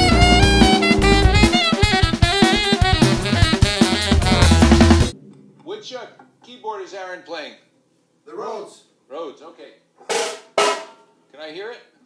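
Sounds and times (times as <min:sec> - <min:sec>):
saxophone melody: 0:00.0 - 0:05.3
keyboards: 0:00.0 - 0:06.1
drum kit: 0:00.0 - 0:06.2.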